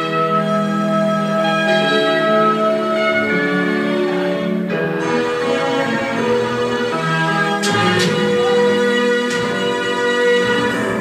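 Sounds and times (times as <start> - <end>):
instrumental music with sustained chords: 0.0 - 11.0.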